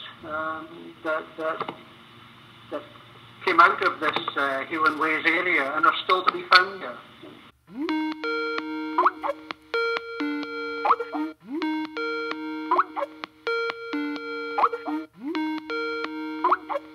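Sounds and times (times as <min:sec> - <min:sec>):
electronic call ringtone chime: 0:07.8 - 0:16.9.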